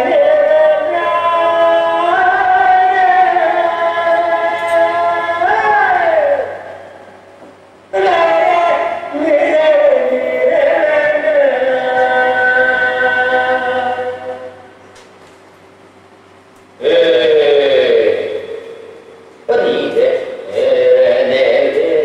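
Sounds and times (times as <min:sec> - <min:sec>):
chanted singing: 0:00.0 - 0:07.2, 0:07.9 - 0:14.8, 0:16.8 - 0:22.0.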